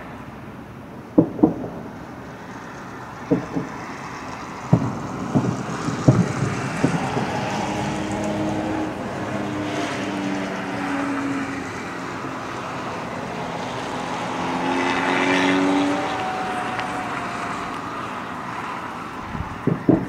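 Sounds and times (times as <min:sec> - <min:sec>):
engine humming: 0:00.0 - 0:20.0.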